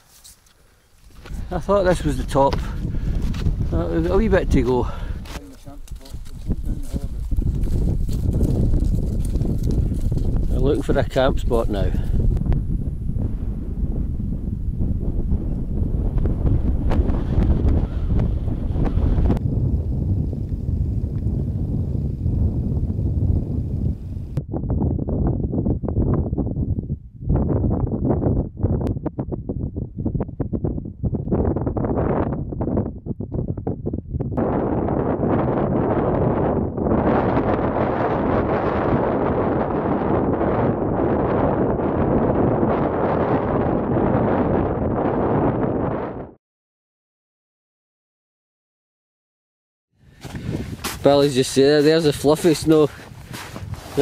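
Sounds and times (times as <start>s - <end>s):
wind buffeting microphone: 1.1s - 46.4s, 50.0s - 54.0s.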